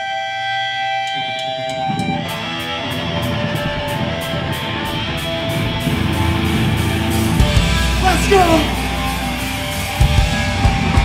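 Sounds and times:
distorted guitar chords strummed: 0:00.0 - 0:11.0
ringing electric guitar notes: 0:00.0 - 0:11.0
drums beating: 0:01.7 - 0:11.0.

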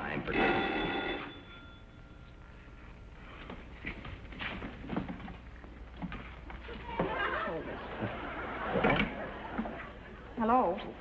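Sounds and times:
low hum: 0:00.0 - 0:04.3.

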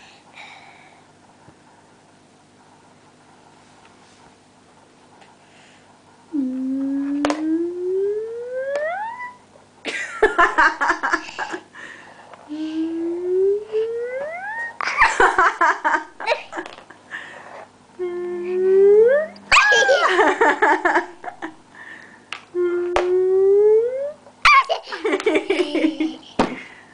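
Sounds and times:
child humming rising note: 0:06.3 - 0:09.3, 0:12.5 - 0:14.7, 0:18.0 - 0:19.7, 0:22.5 - 0:24.2.

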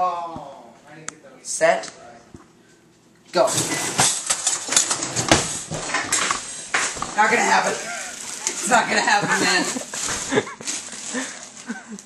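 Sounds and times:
kitchen utensils clattering: 0:03.4 - 0:11.3.

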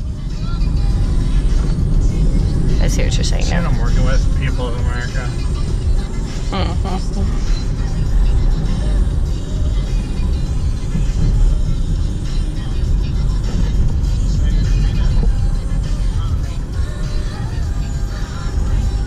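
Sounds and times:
car engine and road noise: 0:00.0 - 0:19.0
music playing: 0:00.0 - 0:19.0.

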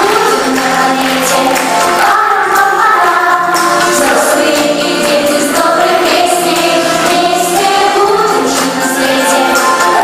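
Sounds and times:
women singing together: 0:00.0 - 0:10.0.

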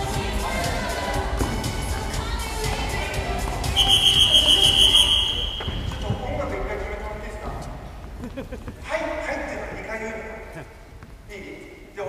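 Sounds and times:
background music: 0:00.0 - 0:07.4
shrill signal tone: 0:03.8 - 0:06.0.

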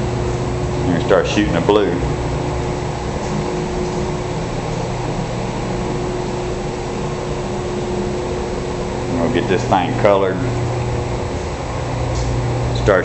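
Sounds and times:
machine humming drone: 0:00.0 - 0:13.0.

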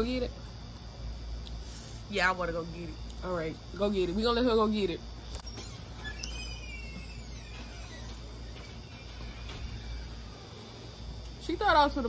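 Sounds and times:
faint falling whistle tone: 0:05.4 - 0:10.6.

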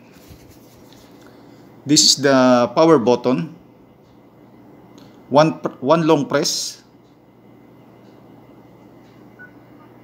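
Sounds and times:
hands rubbing plastic headphones: 0:00.1 - 0:01.2
man speaking: 0:01.9 - 0:03.6, 0:05.3 - 0:06.9.

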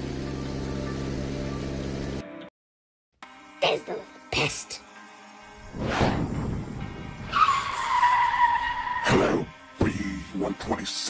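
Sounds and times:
low engine rumble: 0:00.0 - 0:02.2
tyre screech: 0:07.2 - 0:09.5.

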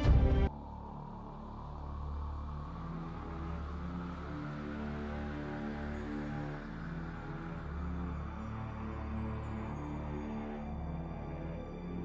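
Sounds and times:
music of long held low notes: 0:00.0 - 0:12.0.

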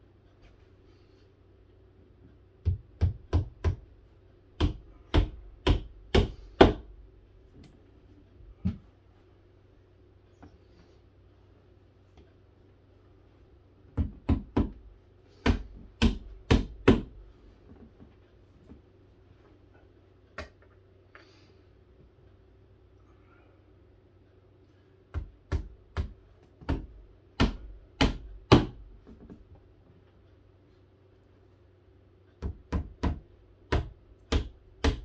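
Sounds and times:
hammer striking nails: 0:04.6 - 0:06.9, 0:15.4 - 0:17.2, 0:25.2 - 0:28.8, 0:32.4 - 0:35.0.

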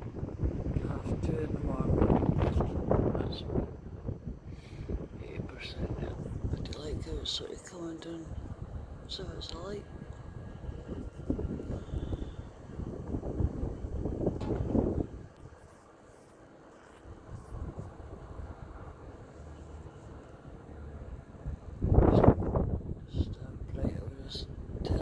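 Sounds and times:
wind rumbling on microphone: 0:00.0 - 0:25.0.

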